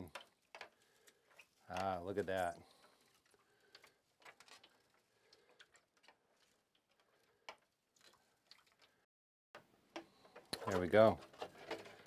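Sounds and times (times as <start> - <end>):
faint clicks and ticks: 0.0 - 12.0.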